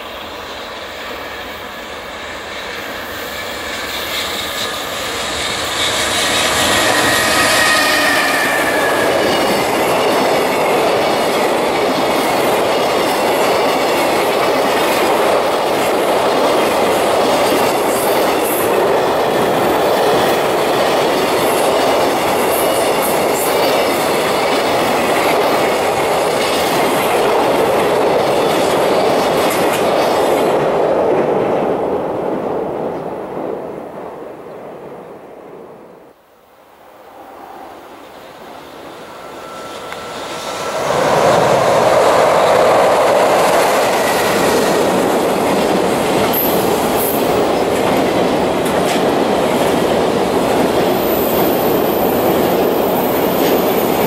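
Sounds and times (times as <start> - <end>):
freight train passing: 0.0 - 54.0
high whine: 5.5 - 10.0, 36.8 - 43.9
wheels clacking over rail joints: 39.2 - 54.0.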